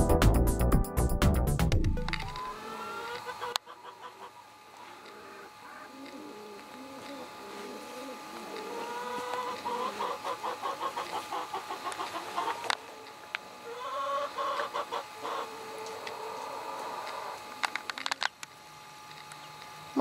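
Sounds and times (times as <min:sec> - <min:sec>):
chicken clucking: 0:02.3 - 0:17.4.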